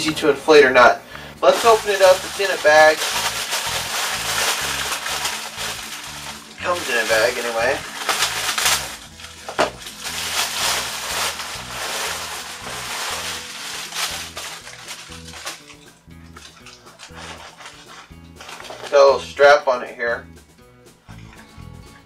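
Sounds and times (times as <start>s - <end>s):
background music with bass line: 1.0s - 22.0s
plastic bag crinkling: 1.4s - 19.1s.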